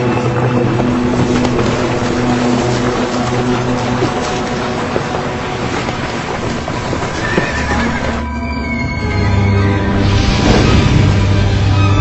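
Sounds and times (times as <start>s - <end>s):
horses galloping: 0.0s - 11.0s
low music tones: 0.0s - 12.0s
horse whinnying: 7.0s - 10.2s.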